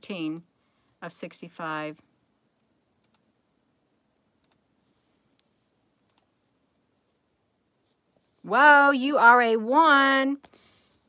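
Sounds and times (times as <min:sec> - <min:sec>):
computer mouse clicks: 0:03.0 - 0:03.3, 0:04.4 - 0:04.6, 0:06.0 - 0:06.3.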